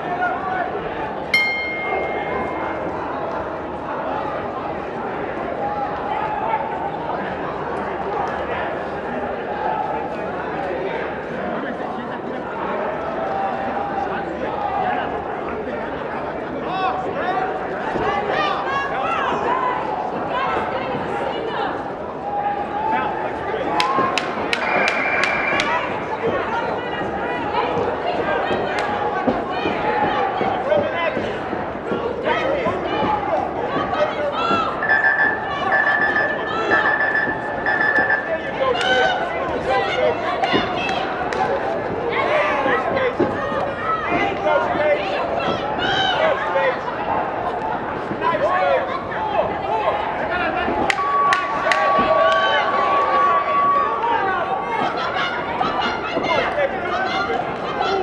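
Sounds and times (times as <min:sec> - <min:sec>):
crowd talking and calling out: 0:00.0 - 0:58.0.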